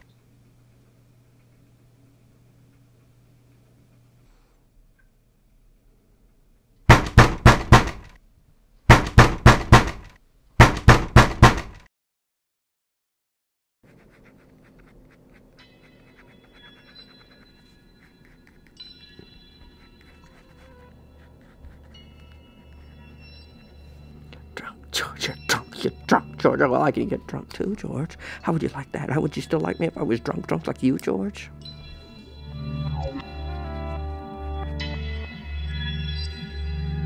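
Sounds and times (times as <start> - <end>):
rapid knocking on a door: 6.9 - 8.1, 8.9 - 11.8
faint music: 14.0 - 37.0.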